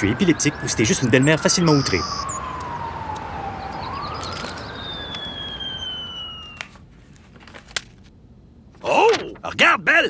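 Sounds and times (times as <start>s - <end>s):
emergency siren wailing: 0.0s - 6.8s
street noise: 0.0s - 7.0s.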